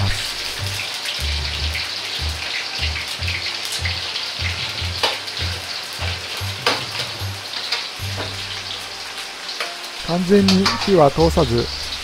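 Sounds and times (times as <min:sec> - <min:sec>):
meat sizzling in hot oil: 0:00.0 - 0:12.0.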